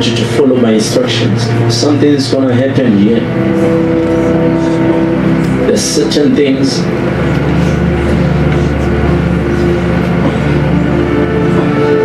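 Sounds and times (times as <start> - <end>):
keyboard sustained chord: 0.0 - 12.0.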